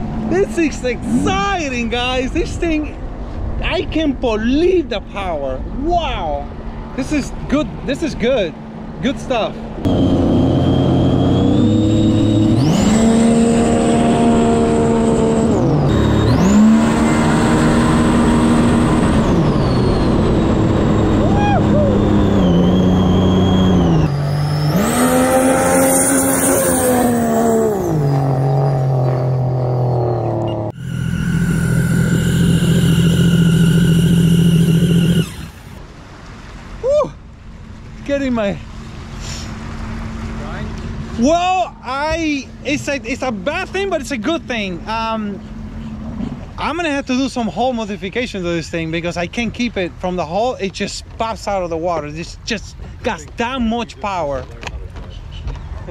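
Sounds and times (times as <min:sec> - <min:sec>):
jet ski engine revving: 0:00.2 - 0:01.8, 0:09.8 - 0:35.8
high whine: 0:09.8 - 0:35.8.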